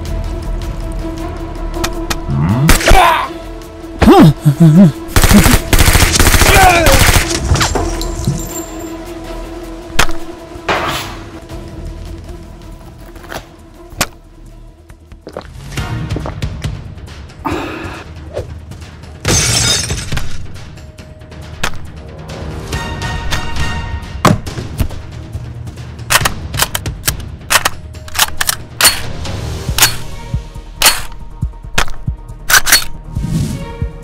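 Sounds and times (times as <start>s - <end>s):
background music: 0.0s - 34.0s
man crying out: 4.0s - 5.0s
rapid automatic blaster fire: 5.2s - 7.3s.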